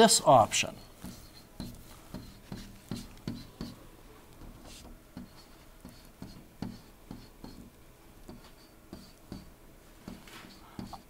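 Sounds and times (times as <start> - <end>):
stylus tapping and scratching screen: 0.2 - 11.0.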